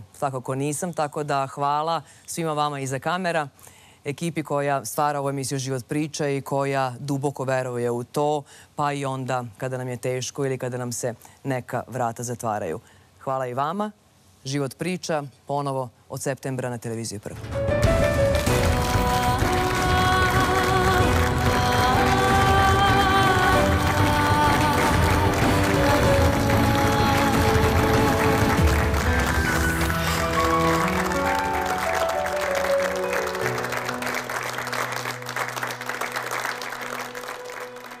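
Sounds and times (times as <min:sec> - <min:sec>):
closing theme music: 0:17.4 - 0:38.0
studio audience applauding: 0:17.8 - 0:38.0.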